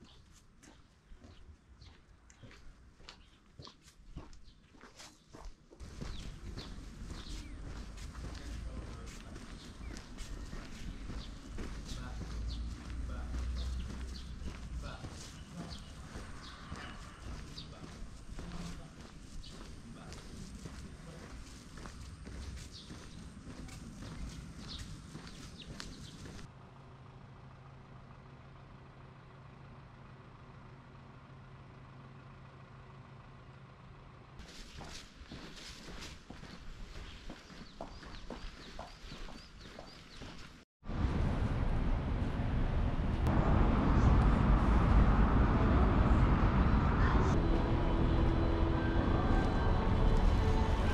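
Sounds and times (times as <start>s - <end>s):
footsteps on stone pavement: 0.0s - 26.5s, 34.4s - 40.7s
small bird chirping: 5.9s - 26.4s, 36.9s - 40.6s
low rumble: 40.9s - 50.9s.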